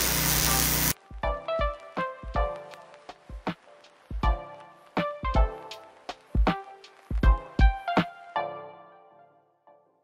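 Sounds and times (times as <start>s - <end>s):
arc welding crackling and hissing: 0.0s - 1.0s, 2.4s - 7.4s
background music with a beat: 0.6s - 8.7s.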